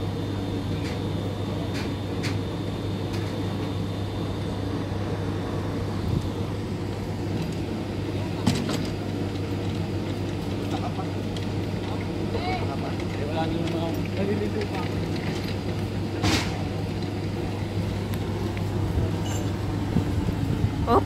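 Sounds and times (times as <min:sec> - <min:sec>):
low engine hum: 0:00.0 - 0:21.0.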